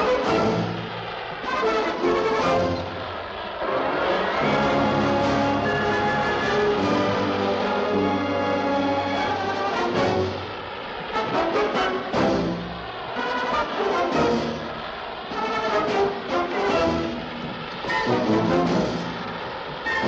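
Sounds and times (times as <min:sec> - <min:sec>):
orchestral music: 0:00.0 - 0:10.5, 0:11.1 - 0:20.0.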